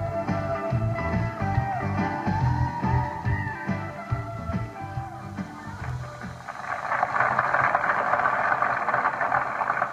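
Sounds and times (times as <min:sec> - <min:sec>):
rock band bass and drums: 0:00.0 - 0:06.4
audience applause: 0:05.8 - 0:09.9.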